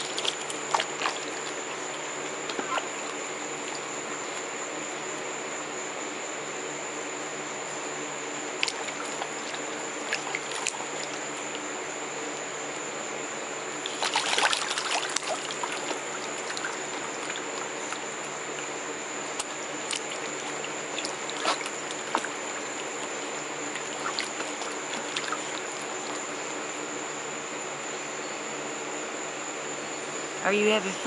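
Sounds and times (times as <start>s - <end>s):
duck splashing in water: 0.0s - 4.5s, 8.6s - 11.6s, 13.8s - 26.6s
steady background hiss: 0.0s - 31.0s.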